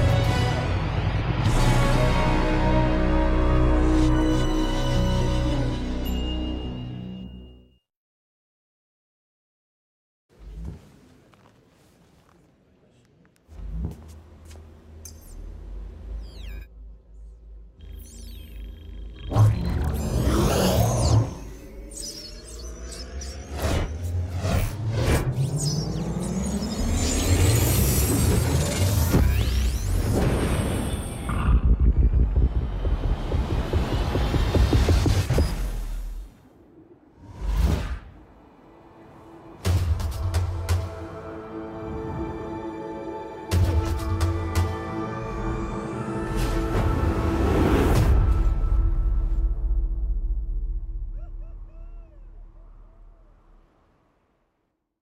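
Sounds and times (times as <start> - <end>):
low rumble: 30.0 - 38.5
deep steady rumble: 31.2 - 35.3.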